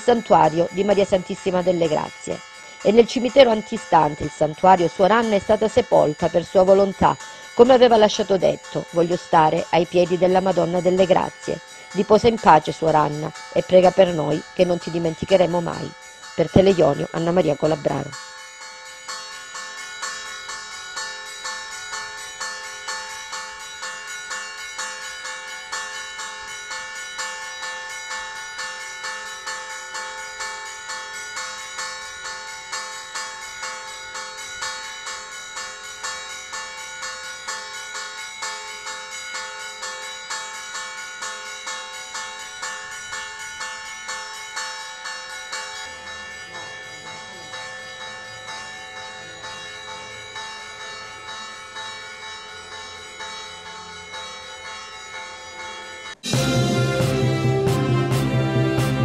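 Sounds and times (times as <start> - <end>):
church bells pealing: 0.0 - 59.0.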